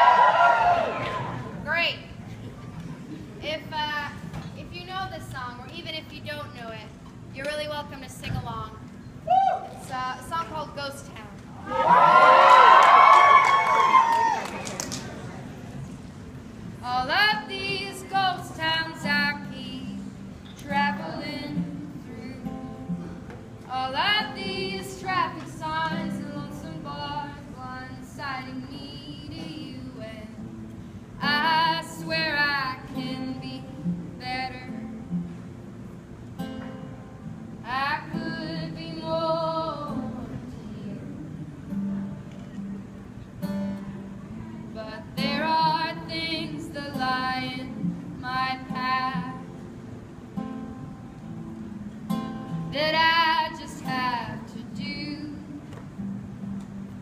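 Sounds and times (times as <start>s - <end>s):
strummed acoustic guitar: 15.8s - 57.0s
women singing: 16.8s - 22.8s, 23.7s - 30.4s, 31.2s - 34.8s, 37.7s - 41.7s, 44.8s - 49.4s.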